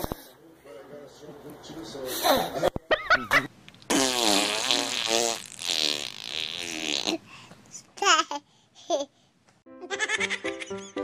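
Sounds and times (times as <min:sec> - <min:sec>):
buzzy fart-like noise: 0:03.9 - 0:07.2.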